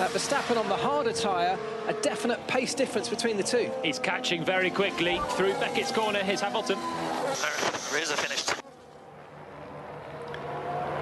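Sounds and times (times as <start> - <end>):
racing car engines droning: 0.0 - 11.0.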